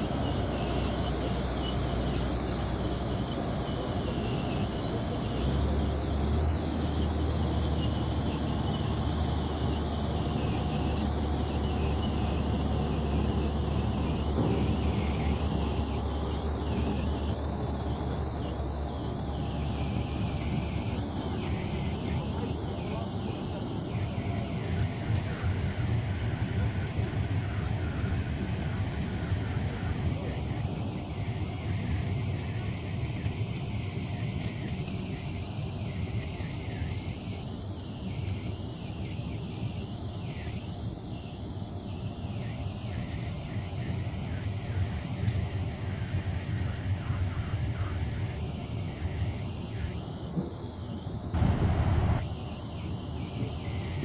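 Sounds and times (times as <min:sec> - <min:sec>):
armoured vehicle engine idling: 0:00.0 - 0:24.6, 0:51.3 - 0:52.2.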